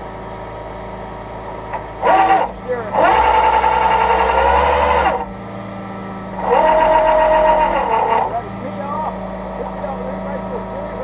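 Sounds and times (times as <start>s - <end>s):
truck engine idling: 0.0s - 11.0s
winch whining: 1.7s - 11.0s.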